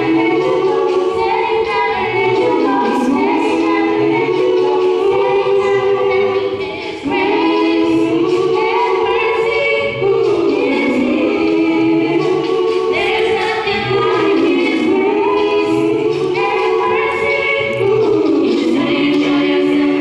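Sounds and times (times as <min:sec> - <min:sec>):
vocal group singing a cappella: 0:00.0 - 0:20.0.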